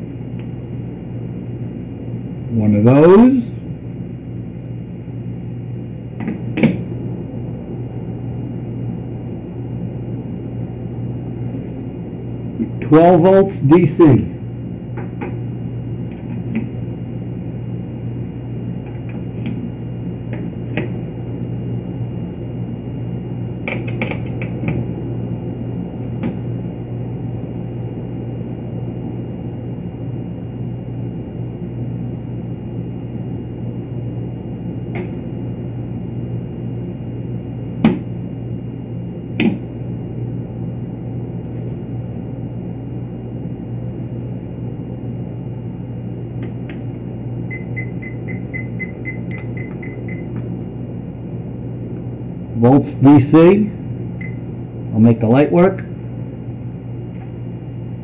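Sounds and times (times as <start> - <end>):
low electrical hum: 0.0 - 58.0.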